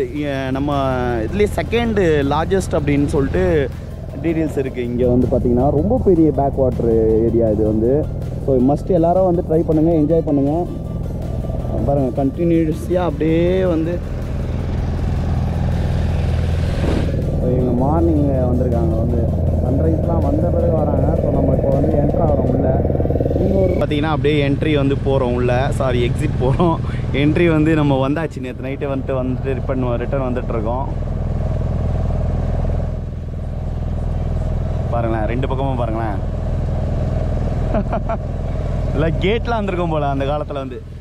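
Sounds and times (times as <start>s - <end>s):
boat motor droning: 0.0s - 41.0s
wind: 0.0s - 41.0s
water hissing: 15.6s - 17.4s.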